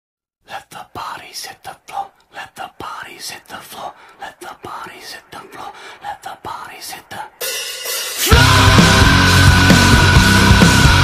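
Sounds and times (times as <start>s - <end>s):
person making breathy whispered sounds: 0.4s - 7.5s.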